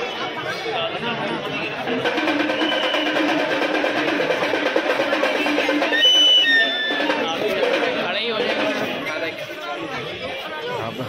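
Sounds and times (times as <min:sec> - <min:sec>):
crowd talking: 0:00.0 - 0:11.0
rhythmic drumming and percussion: 0:00.9 - 0:10.5
short high shrill tones: 0:05.8 - 0:07.2.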